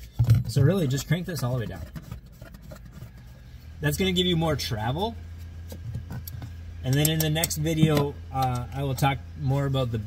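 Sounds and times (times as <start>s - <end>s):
wrench clicking: 6.9s - 9.0s.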